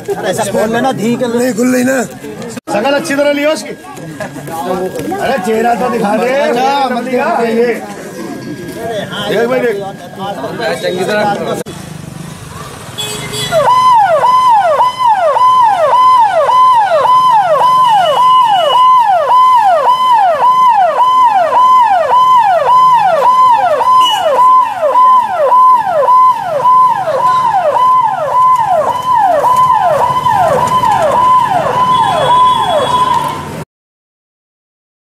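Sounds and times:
police siren: 2.7 - 11.3, 13.5 - 33.6.

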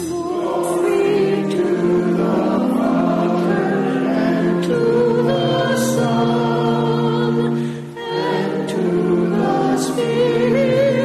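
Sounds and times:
church choir singing a hymn: 0.0 - 11.0.

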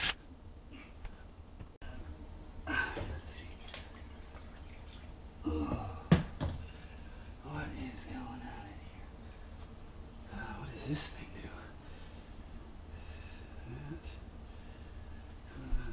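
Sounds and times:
man muttering: 5.4 - 6.1.

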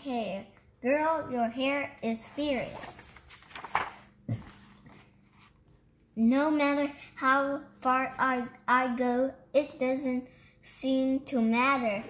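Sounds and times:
book page turning: 2.2 - 5.8.

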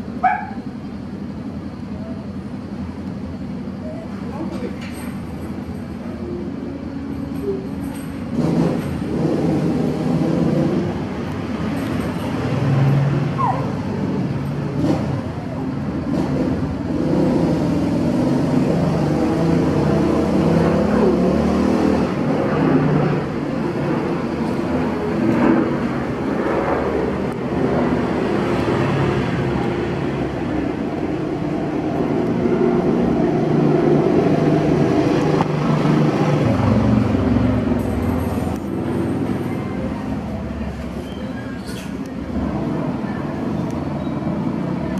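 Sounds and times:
low rumble of traffic: 0.0 - 44.9.

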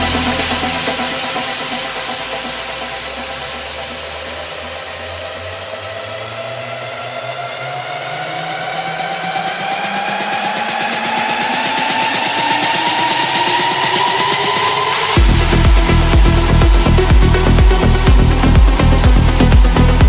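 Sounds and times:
noisy sweep: 0.0 - 20.0
rising synth chord: 0.0 - 20.0.

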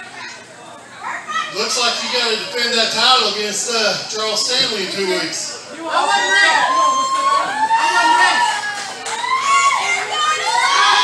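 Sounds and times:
children calling out: 5.9 - 11.0.

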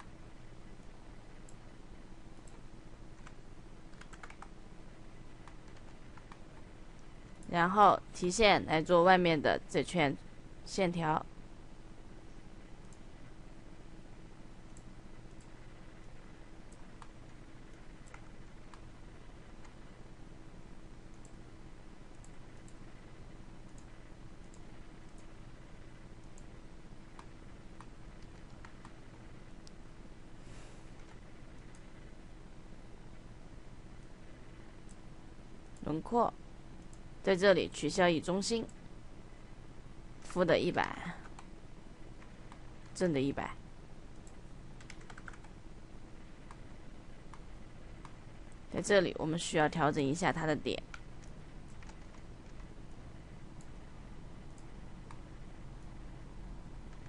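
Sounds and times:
low hum: 0.0 - 57.0
computer mouse clicks: 2.4 - 4.6, 5.4 - 7.5, 14.7 - 18.9, 19.6 - 19.8, 21.1 - 21.4, 22.1 - 22.8, 23.7 - 25.3, 26.2 - 26.5, 27.1 - 29.0, 30.9 - 32.0, 44.1 - 45.6, 47.3 - 48.6, 50.8 - 53.8
computer keyboard keystrokes: 3.2 - 4.6, 5.4 - 6.4, 16.7 - 18.8, 27.2 - 29.0, 44.1 - 45.6, 50.8 - 52.7.

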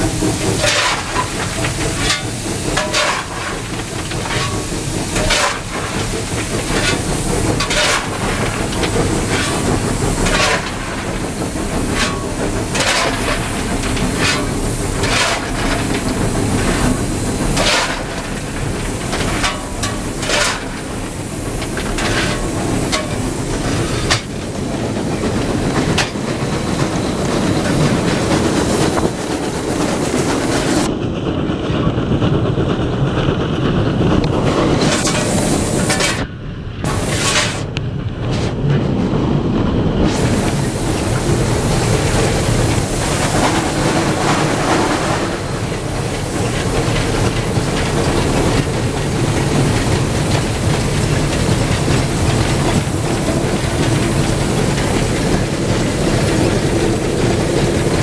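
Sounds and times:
sharp steam bursts: 0.0 - 30.9, 40.0 - 58.0
rail clatter: 0.0 - 58.0
steam locomotive rumble: 0.0 - 58.0
shovel scooping coal: 0.5 - 24.4, 34.7 - 38.6.

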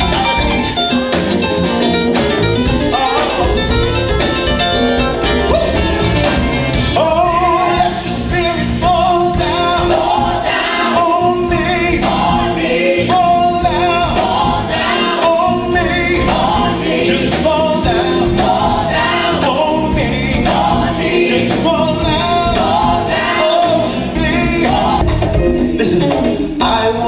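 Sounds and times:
band playing: 0.0 - 27.0
choir singing in harmony: 5.1 - 27.0.

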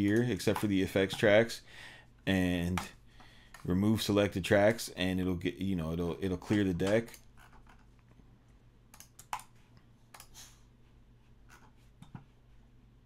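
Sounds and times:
computer keyboard and mouse clicks: 6.5 - 7.9, 8.9 - 10.4.

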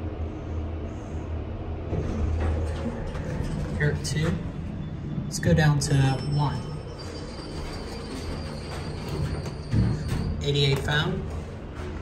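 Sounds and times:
elevator rumble and rattle: 0.0 - 12.0
faint high whine: 3.8 - 11.2.

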